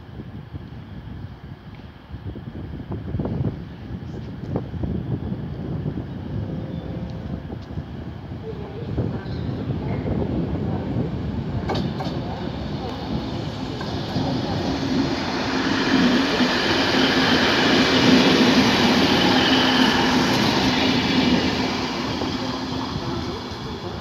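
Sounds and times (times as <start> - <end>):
train wheels on rails: 7.0 - 24.0.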